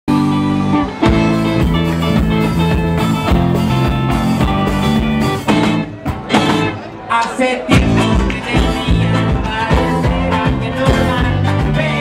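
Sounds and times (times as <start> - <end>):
guitar and keyboard chords: 0.1 - 12.0
live band playing amplified music: 0.1 - 12.0.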